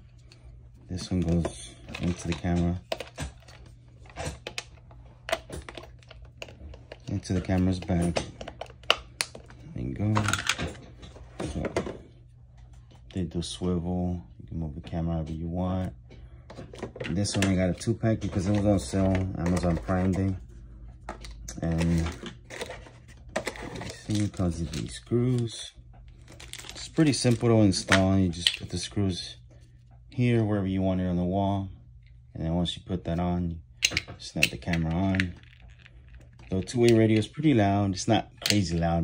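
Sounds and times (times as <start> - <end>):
faint steady hum: 0.0 - 39.0
plastic packaging clicks and rustles: 1.0 - 10.7, 21.1 - 28.8.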